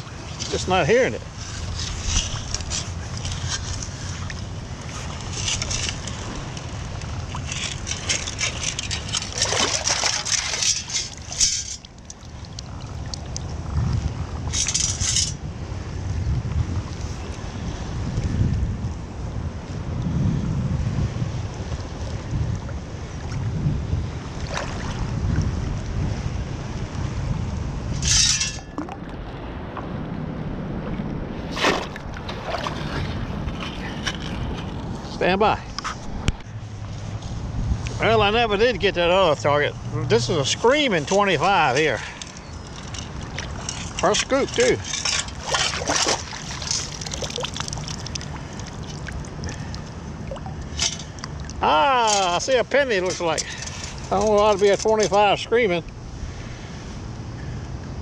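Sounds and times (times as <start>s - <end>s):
shallow water sloshing: 0.0s - 15.4s, 24.2s - 25.6s, 30.8s - 35.2s, 35.9s - 55.4s
wind buffeting microphone: 0.0s - 58.0s
sharp water splashes: 1.7s - 13.5s, 24.4s - 25.0s, 31.4s - 33.3s, 40.9s - 52.4s.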